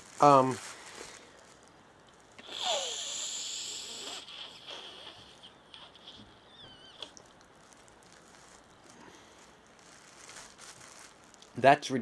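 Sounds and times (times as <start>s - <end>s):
plastic bag rustling: 0.0s - 2.7s, 5.8s - 12.0s
sniff through plastic straw: 2.4s - 6.4s.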